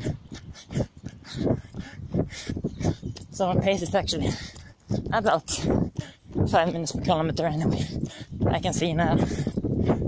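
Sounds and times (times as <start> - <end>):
runner breathing hard: 0.0 - 10.0.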